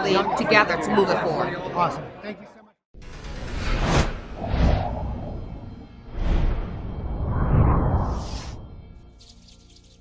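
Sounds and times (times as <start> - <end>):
music: 3.0 - 10.0
whoosh sound effects: 3.3 - 8.9
deep low rumble: 3.5 - 9.0.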